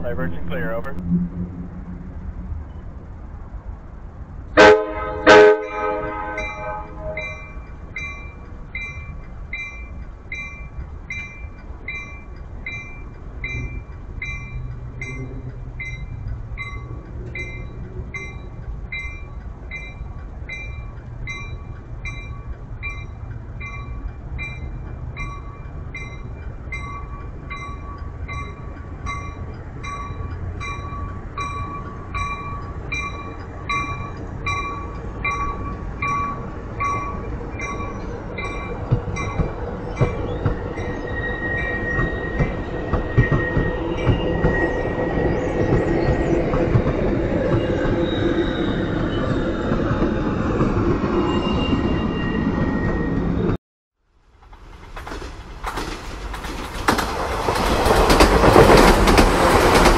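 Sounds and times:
train cars rumbling and clacking: 0.0 - 53.6, 54.2 - 59.9
train bell ringing: 5.6 - 46.2
train wheel squeal: 5.6 - 53.6.

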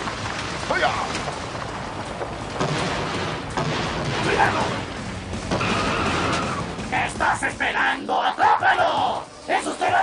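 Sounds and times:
action background music: 0.0 - 10.0.

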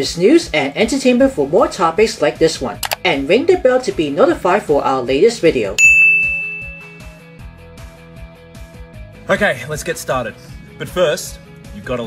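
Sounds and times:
background music with steady beat: 0.0 - 12.0
electronic notification ding: 5.8 - 7.2.

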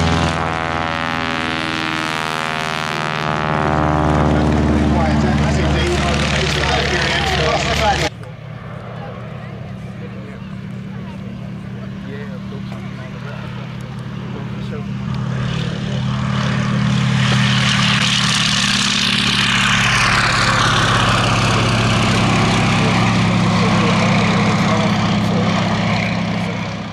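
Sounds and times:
biplane radial engine at full power: 0.0 - 26.9.

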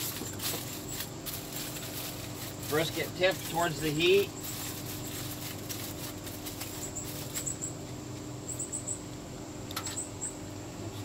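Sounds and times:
foil rustling and clicks: 0.0 - 7.6
steady low hum: 0.0 - 11.0
high chirp-like squeaks: 6.6 - 7.8.

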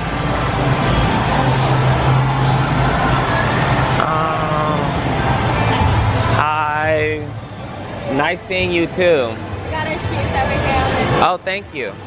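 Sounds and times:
faint voices: 0.0 - 12.0
rumble of busy indoor venue: 0.0 - 12.0.

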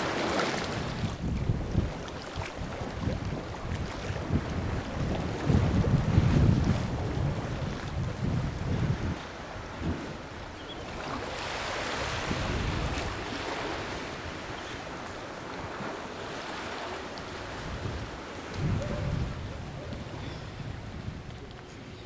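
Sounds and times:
choppy open sea: 0.0 - 22.0
wind buffeting microphone: 0.0 - 22.0.

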